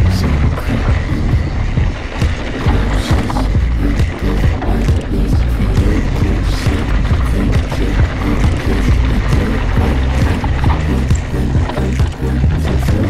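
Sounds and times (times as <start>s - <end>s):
background music: 0.0s - 13.0s
mountain bike rattling on trail: 0.0s - 13.0s
tyres knocking on stones: 0.0s - 13.0s.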